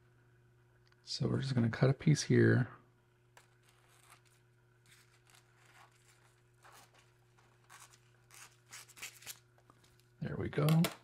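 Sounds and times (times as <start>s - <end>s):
steady low hum: 0.0s - 11.0s
foil sheet rustling and crinkling: 3.6s - 10.0s.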